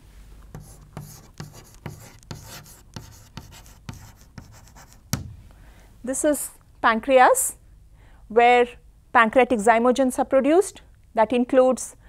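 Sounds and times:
chalk tapping and scraping on blackboard: 0.5s - 5.3s.

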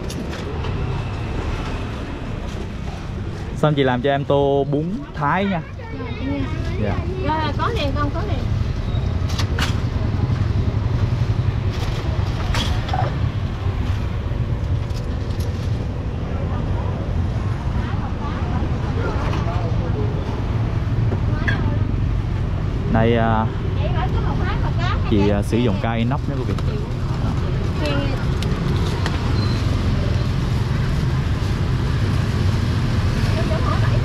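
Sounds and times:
low rumble of street traffic: 0.0s - 34.0s.

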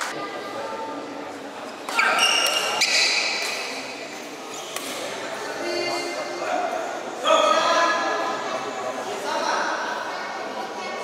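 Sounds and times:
court shoes squeaking: 1.7s - 5.1s.

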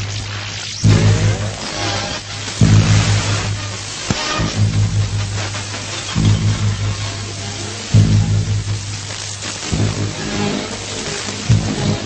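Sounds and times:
pulsing electrical buzz: 0.0s - 12.0s
static hiss: 0.0s - 12.0s.

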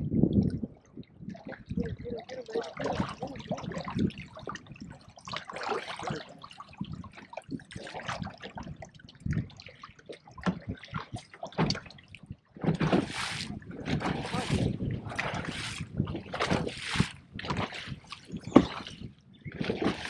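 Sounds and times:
water lapping against boat hull: 0.0s - 20.0s.

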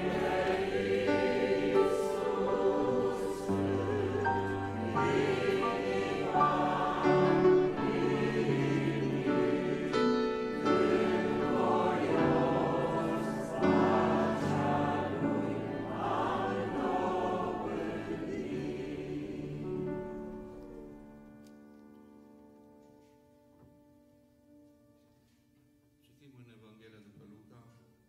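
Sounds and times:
congregation singing a hymn: 0.0s - 21.8s
piano accompaniment: 0.0s - 25.2s.

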